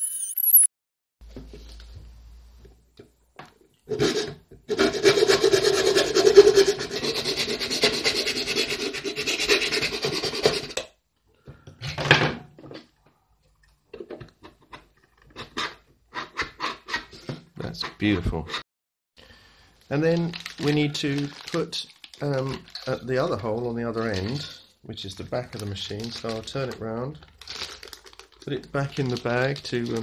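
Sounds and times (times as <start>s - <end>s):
hand file rasping plastic: 4.0s - 10.8s.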